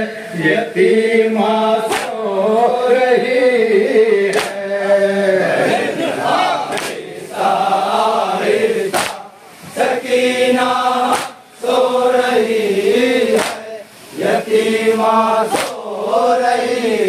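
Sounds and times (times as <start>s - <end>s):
men chanting in unison: 0.0s - 17.0s
hands striking chests: 11.1s - 11.4s, 13.3s - 13.6s, 15.5s - 15.8s.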